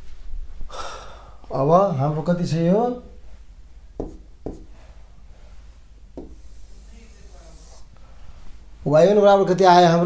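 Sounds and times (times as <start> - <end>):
man inhaling sharply: 0.7 - 1.5.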